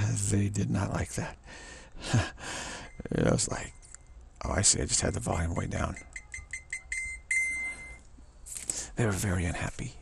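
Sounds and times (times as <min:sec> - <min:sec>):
high electronic beeps: 0:05.7 - 0:08.1.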